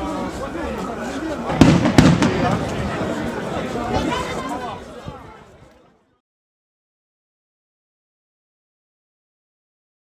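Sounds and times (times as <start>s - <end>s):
small firework crack: 1.5s - 3.4s
fireworks bangs: 1.5s - 4.4s.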